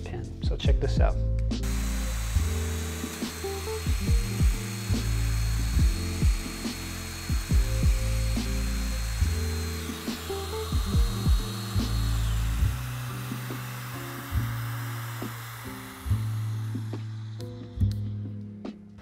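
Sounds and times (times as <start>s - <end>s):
background music with plucked bass: 0.0s - 15.4s
power tool motor whining: 1.6s - 17.9s.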